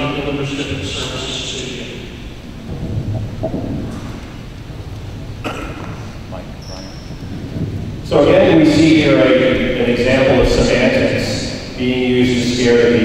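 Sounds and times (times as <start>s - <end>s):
microphone handling noise: 2.5s - 6.6s.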